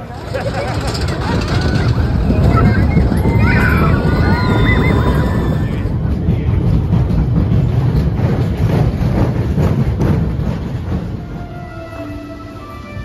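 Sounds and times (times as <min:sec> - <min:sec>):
roller coaster cars rumbling: 0:00.0 - 0:13.0
music: 0:10.4 - 0:13.0.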